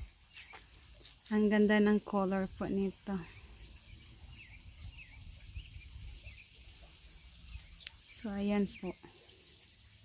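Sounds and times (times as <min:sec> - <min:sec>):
small bird chirping: 0:00.1 - 0:01.2, 0:03.2 - 0:09.0.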